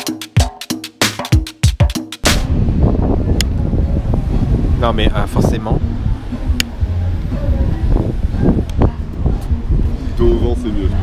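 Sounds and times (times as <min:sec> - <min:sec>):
music with sharp drum hits: 0:00.0 - 0:02.9
wind buffeting microphone: 0:02.3 - 0:11.0.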